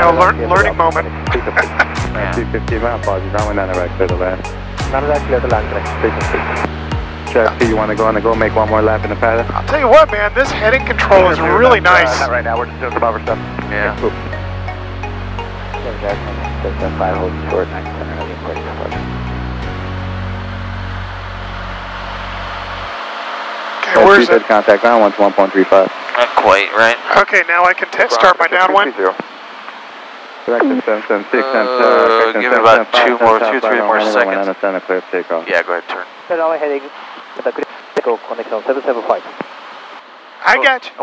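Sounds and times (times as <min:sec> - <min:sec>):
person speaking: 0:00.0 - 0:04.2, 0:07.4 - 0:14.3, 0:15.9 - 0:19.0, 0:30.5 - 0:34.0
low hum: 0:00.0 - 0:27.1
steady hiss: 0:00.1 - 0:14.3, 0:15.0 - 0:41.0.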